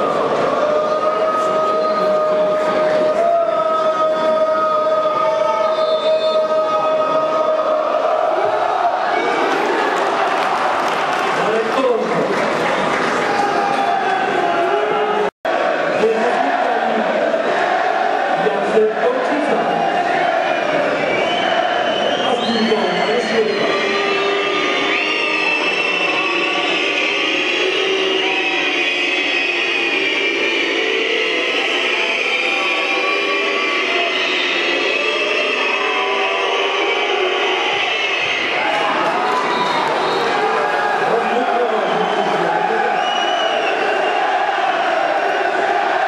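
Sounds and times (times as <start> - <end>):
crowd chanting and singing: 0.0 - 46.0.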